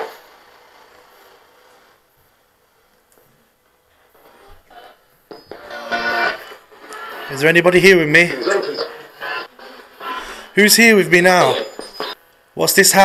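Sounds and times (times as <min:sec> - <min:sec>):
choppy radio music and voices: 0:04.0 - 0:13.0.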